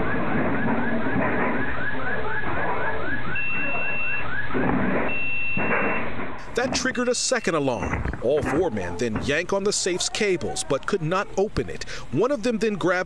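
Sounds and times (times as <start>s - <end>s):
banging and scraping: 0.0s - 3.0s, 4.5s - 10.7s
alarm siren whooping: 0.0s - 6.2s
high alarm beep: 3.2s - 6.2s.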